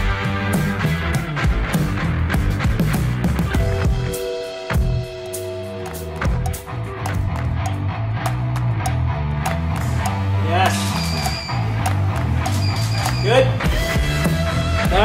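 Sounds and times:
background music with bass line: 0.0s - 15.0s.

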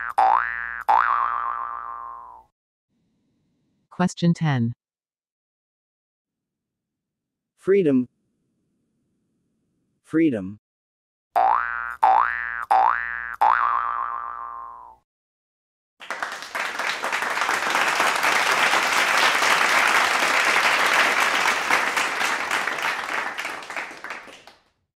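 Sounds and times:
cartoon boing effects: 0.0s - 2.5s, 11.4s - 15.0s
applause: 16.0s - 24.9s.

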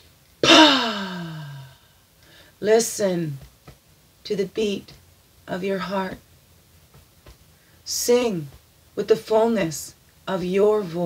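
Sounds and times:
woman sighing: 0.4s - 2.4s.

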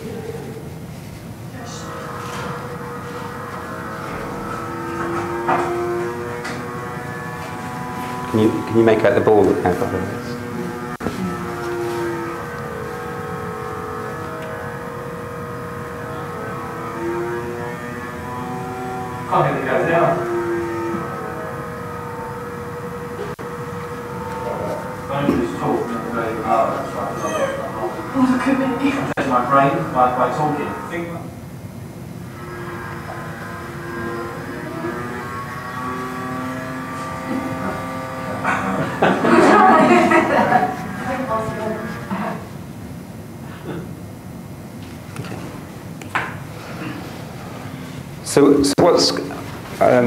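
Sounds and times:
droning hum with held tones: 0.0s - 50.0s
small electric fan whirring: 0.0s - 50.0s.

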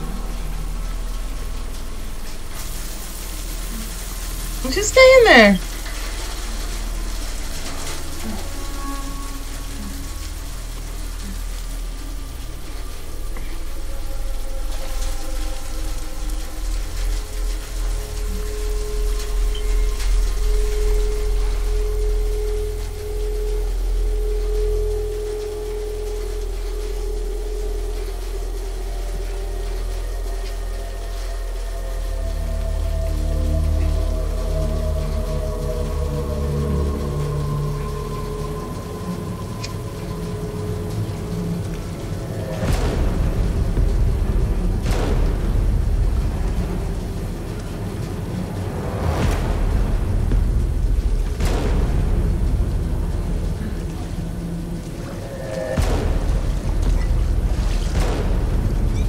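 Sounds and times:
dark sustained music tone: 0.0s - 4.7s, 5.6s - 59.0s
deep steady rumble: 0.0s - 4.7s, 5.3s - 59.0s
pulsing rumble: 15.0s - 59.0s.

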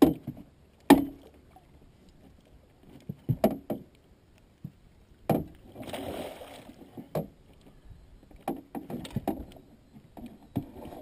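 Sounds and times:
knocks and thumps on boat deck: 3.1s - 3.9s, 4.6s - 5.6s.

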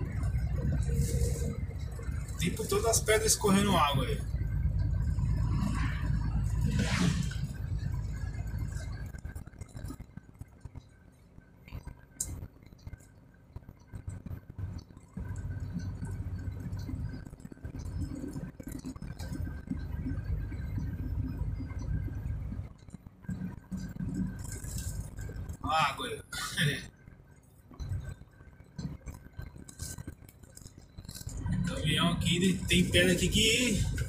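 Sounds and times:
vehicle engine low rumble: 0.0s - 34.0s.

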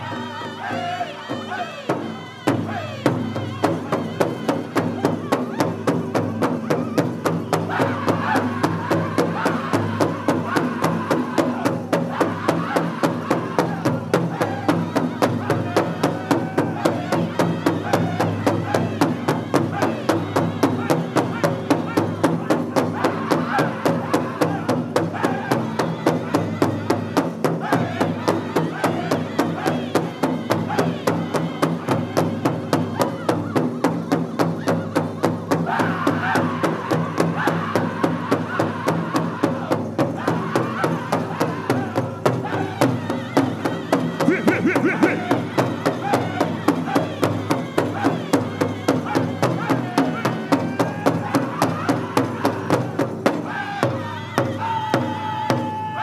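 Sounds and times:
men singing in high unison: 0.0s - 56.0s
large drum beating fast: 44.0s - 53.9s.

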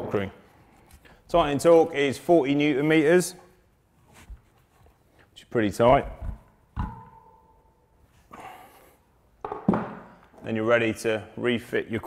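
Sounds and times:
soft rustle: 3.9s - 5.4s.

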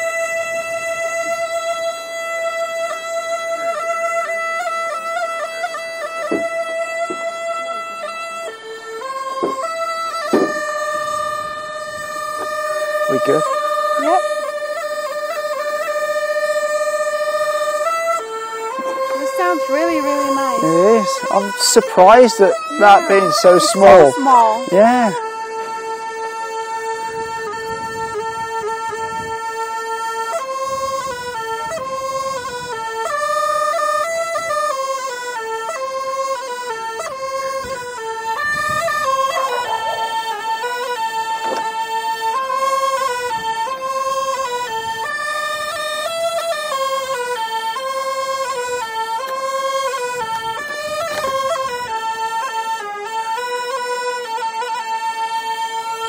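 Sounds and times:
double-pipe flute melody: 0.0s - 56.0s.

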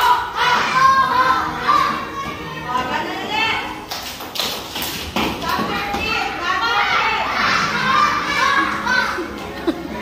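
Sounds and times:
children and adults calling out: 0.0s - 3.6s, 5.9s - 10.0s.

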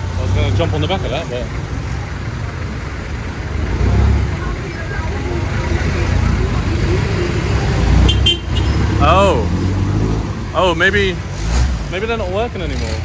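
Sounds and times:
engines rumbling in traffic: 0.0s - 13.0s.

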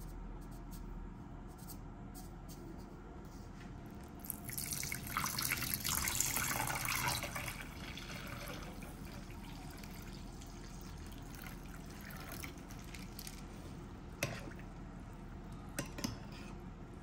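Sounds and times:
water pouring into a bowl: 4.2s - 13.4s.

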